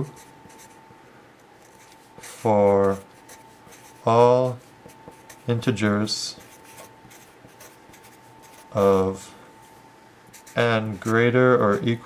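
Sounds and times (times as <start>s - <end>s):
felt-tip marker writing on paper: 0.1s - 0.8s, 1.6s - 5.5s, 6.4s - 9.0s.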